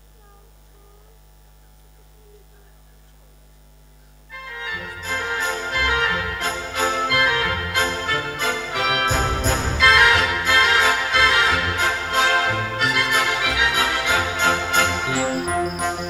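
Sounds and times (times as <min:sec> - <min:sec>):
low electrical hum: 0:00.0 - 0:16.0
electronic keyboard music with orchestra: 0:04.3 - 0:16.0.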